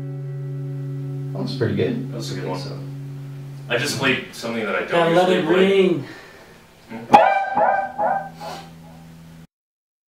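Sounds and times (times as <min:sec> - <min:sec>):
low steady hum: 0:00.0 - 0:09.5
man speaking: 0:01.4 - 0:02.9, 0:03.7 - 0:06.2.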